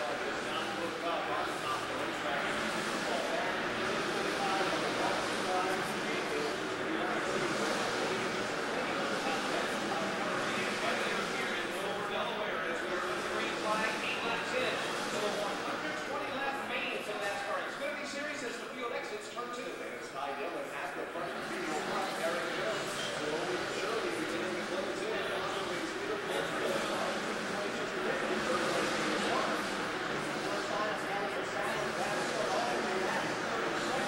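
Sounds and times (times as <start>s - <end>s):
indistinct crowd chatter: 0.0s - 34.0s.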